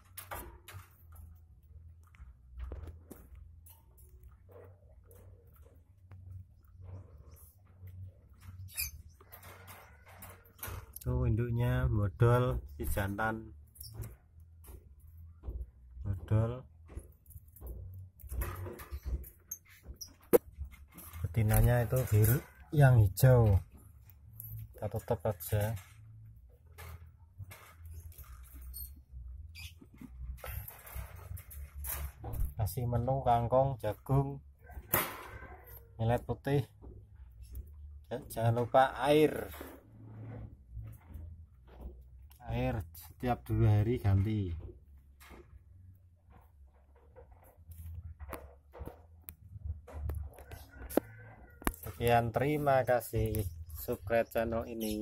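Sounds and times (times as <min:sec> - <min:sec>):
small animal squeaking: 0:08.6 - 0:09.3, 0:29.5 - 0:30.0.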